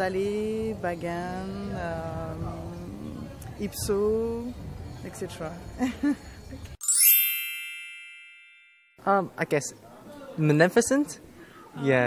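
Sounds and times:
bell-like chime: 6.8s - 9.2s.

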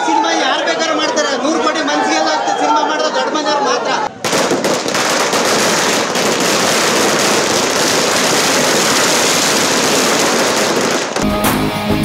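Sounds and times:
firecrackers crackling: 4.2s - 11.7s.

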